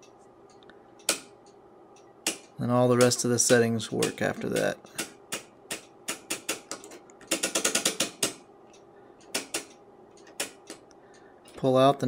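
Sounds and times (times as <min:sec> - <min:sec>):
rotary switch detent clicks: 0:01.0 - 0:10.9.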